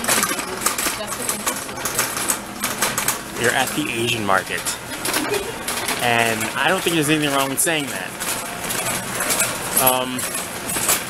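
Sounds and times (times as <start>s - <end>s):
shopping cart rattling: 0.0s - 11.0s.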